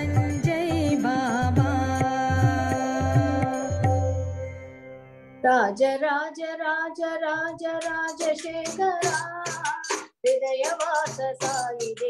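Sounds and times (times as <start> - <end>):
woman singing devotional song: 0.0 - 4.6, 5.4 - 12.0.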